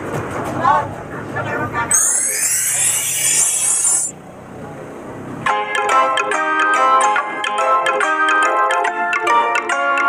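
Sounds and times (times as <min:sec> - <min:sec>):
glassy sparkle sweep effect: 0:01.9 - 0:04.1.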